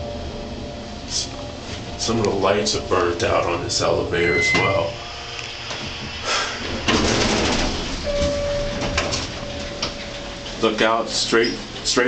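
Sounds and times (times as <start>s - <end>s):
elevator doors sliding open: 0.0s - 12.0s
steady single tone: 4.1s - 5.4s.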